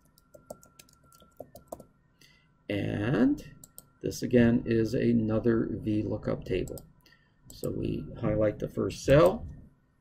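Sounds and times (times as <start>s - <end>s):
keyboard typing: 0.0s - 1.9s, 3.6s - 3.9s.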